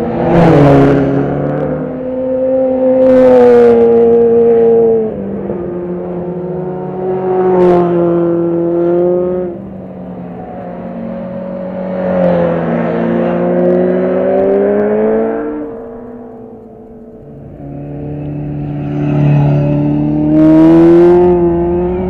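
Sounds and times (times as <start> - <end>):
motorcycle engines passing: 0.0 - 22.0.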